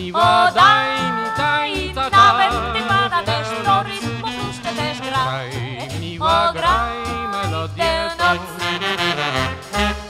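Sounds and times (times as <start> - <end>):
person singing with vibrato: 0.0 - 8.9.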